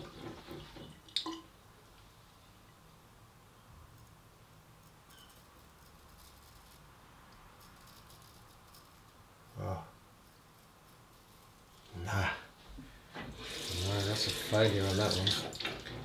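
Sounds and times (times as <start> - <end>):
water splashing: 13.4 - 16.0.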